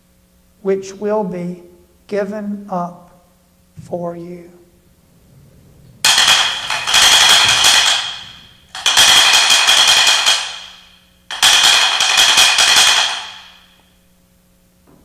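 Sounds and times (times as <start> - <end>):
altar bells jingling: 6.0 - 13.7.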